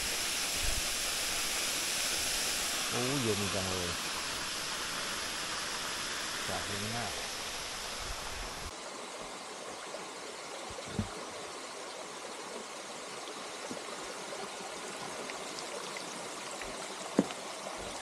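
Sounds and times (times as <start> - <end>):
waterfall rushing: 0.0 - 8.7.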